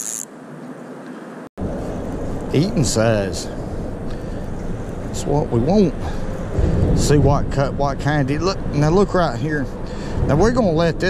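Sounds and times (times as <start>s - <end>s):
fishing reel whirring: 0.0s - 0.3s
low rumble: 1.6s - 11.0s.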